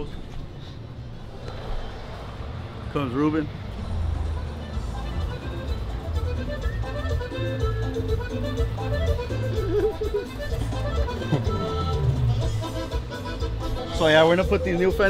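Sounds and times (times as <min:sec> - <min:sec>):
background music with pulsing bass: 0:03.9 - 0:15.0.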